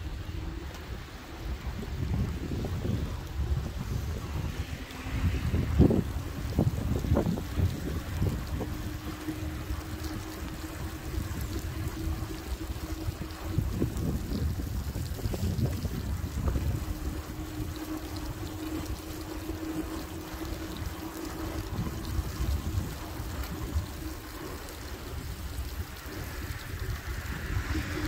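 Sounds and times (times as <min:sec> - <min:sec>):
faint steady hum: 0:00.0 - 0:28.0
tyres hissing on wet road: 0:00.0 - 0:28.0
wind buffeting microphone: 0:00.0 - 0:28.0.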